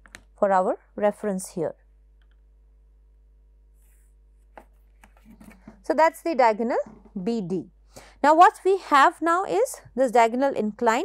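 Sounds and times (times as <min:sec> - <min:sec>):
pencil stroke on paper: 0:03.8 - 0:05.6.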